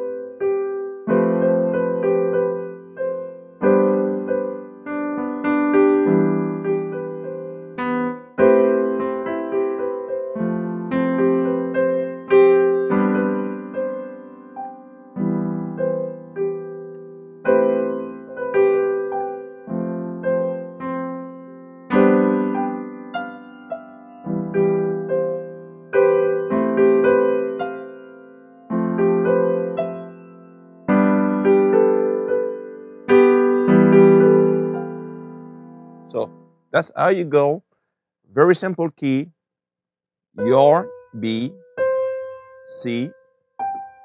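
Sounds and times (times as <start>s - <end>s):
digital piano chords: 0.0s - 37.7s, 38.3s - 39.4s, 40.4s - 44.0s.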